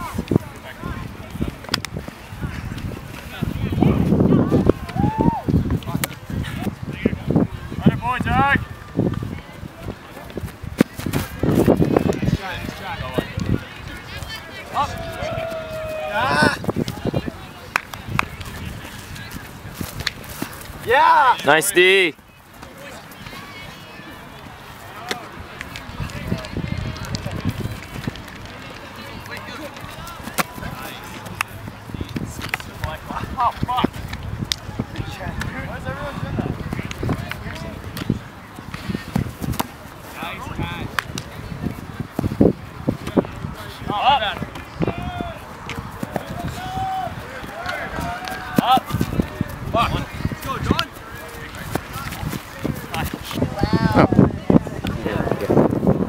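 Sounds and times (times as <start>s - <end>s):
distant players shouting: 14.2s - 16.7s, 43.7s - 50.9s.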